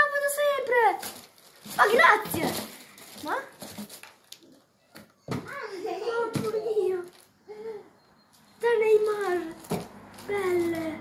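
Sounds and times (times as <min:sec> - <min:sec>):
tissue paper handling: 0:00.6 - 0:04.2.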